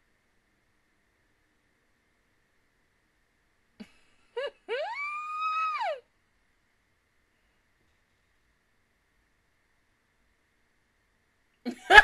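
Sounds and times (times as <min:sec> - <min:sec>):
woman squealing: 0:04.4 - 0:06.0.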